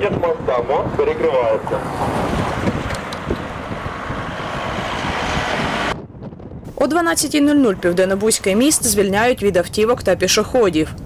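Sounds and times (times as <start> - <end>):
voices: 0.0 - 2.0, 6.8 - 11.0
road traffic: 0.0 - 11.0
wind buffeting microphone: 0.0 - 11.0.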